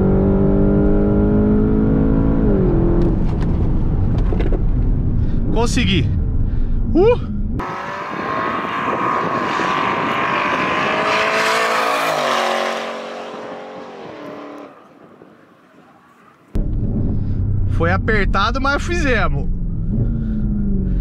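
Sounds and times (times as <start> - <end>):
car engine accelerating: 0.0 - 5.4, 6.2 - 21.0.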